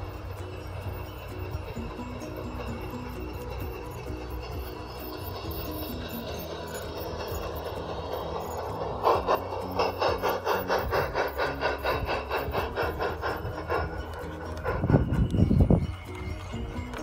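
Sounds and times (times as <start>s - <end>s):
background music: 0.0s - 17.0s
model train rasping beat: 0.0s - 17.0s.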